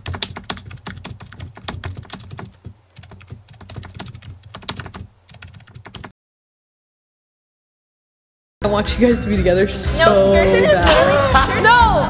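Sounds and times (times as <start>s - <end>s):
keyboard key clicks: 0.0s - 6.1s.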